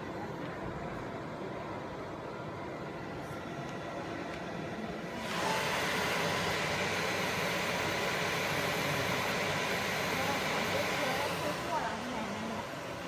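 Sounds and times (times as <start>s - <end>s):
laser engraving machine hiss: 4.9s - 13.0s.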